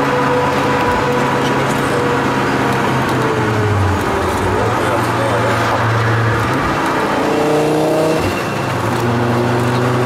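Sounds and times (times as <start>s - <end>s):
car engine pulling at speed: 0.0s - 10.0s.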